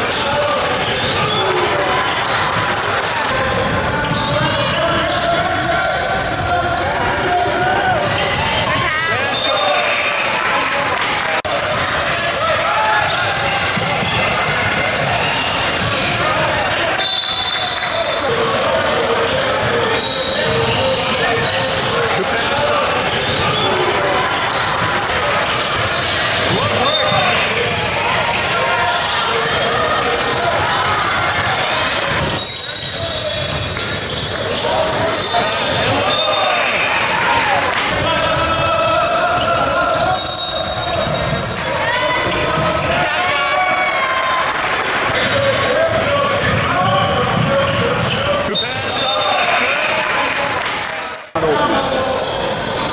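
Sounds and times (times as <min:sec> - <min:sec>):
voices in echoing gym: 0:00.0 - 0:52.9.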